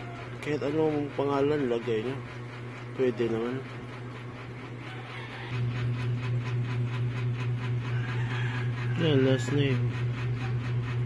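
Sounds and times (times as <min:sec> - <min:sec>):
low machine hum with pulse: 0:00.0 - 0:11.0.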